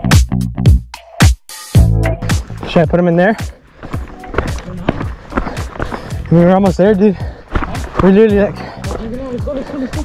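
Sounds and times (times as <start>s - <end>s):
background music: 0.0s - 10.0s
running footsteps on rock: 2.3s - 10.0s.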